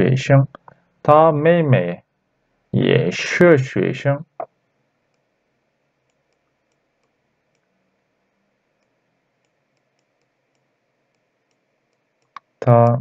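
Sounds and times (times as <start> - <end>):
pen ticking on digital tablet: 9.4 - 12.4.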